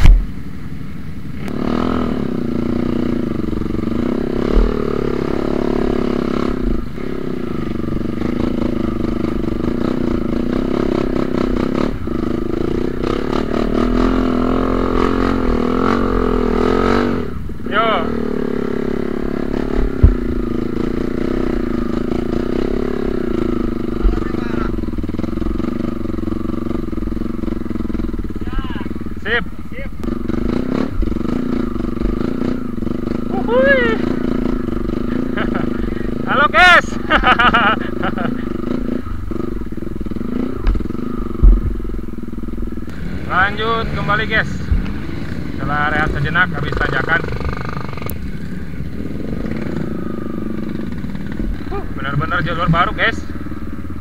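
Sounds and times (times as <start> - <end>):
motorbike engine revving: 1.4 - 54.0
sharp knocks from motorbike: 19.8 - 20.3.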